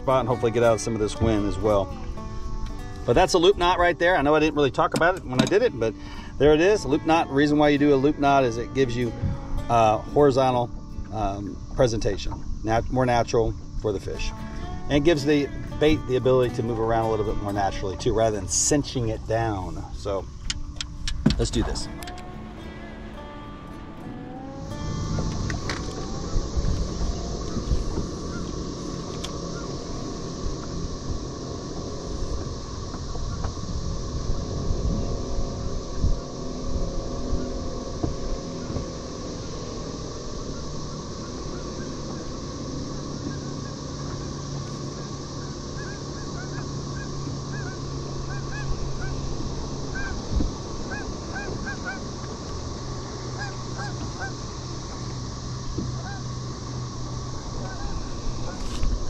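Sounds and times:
distant geese honking: 0.0s - 20.6s, 21.4s - 59.0s
low hum: 0.0s - 59.0s
wind noise: 0.0s - 59.0s.

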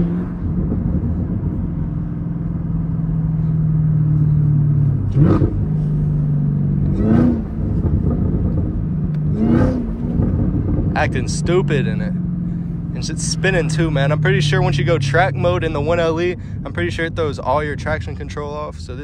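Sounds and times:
car engine drone from inside cabin: 0.0s - 19.0s
engine surging in pitch: 0.0s - 19.0s.

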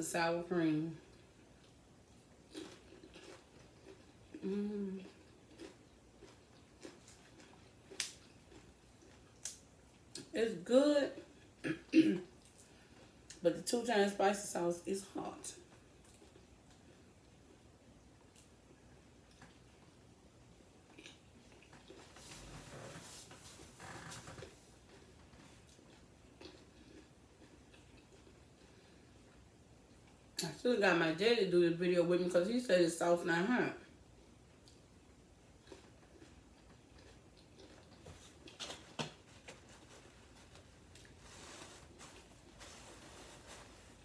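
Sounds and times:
woman chewing: 1.1s - 9.5s, 23.8s - 30.2s, 35.6s - 44.0s.

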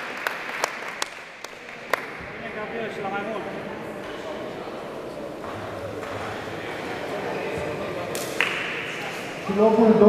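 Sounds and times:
murmur of people talking: 1.3s - 10.0s.

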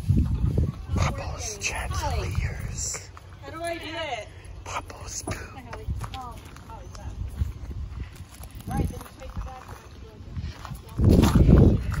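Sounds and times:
footsteps on gravel: 4.9s - 12.0s.

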